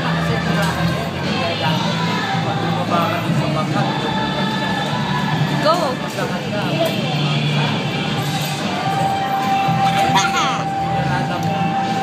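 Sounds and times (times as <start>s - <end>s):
food court chatter and hum: 0.0s - 12.0s
girls giggling: 9.8s - 10.7s.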